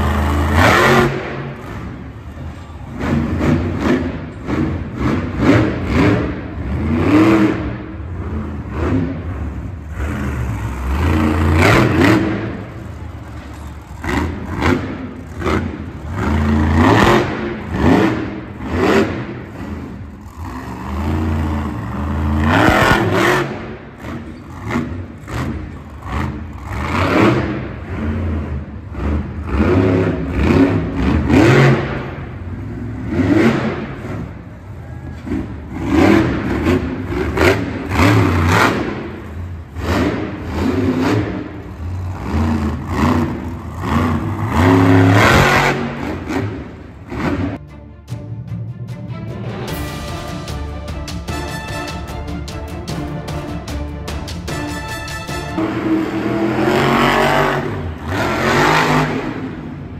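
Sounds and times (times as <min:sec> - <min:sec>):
monster truck engine revving: 0:00.0 - 0:47.6, 0:51.2 - 0:59.9.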